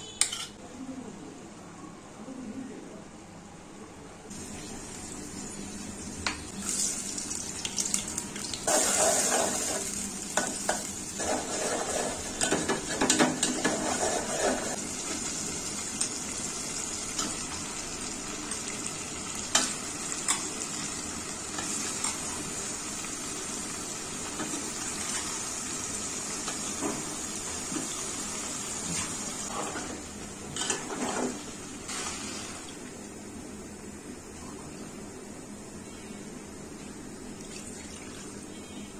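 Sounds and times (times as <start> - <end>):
food sizzling in hot oil: 4.3 - 30.0
metal spoon scraping a pot: 11.2 - 14.8.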